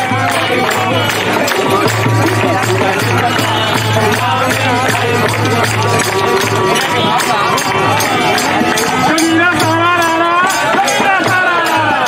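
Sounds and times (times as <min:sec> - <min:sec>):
hand clapping: 0:00.0 - 0:11.8
dholak drum: 0:00.0 - 0:12.0
jingling tambourine: 0:00.0 - 0:12.0
several voices singing: 0:00.0 - 0:12.0.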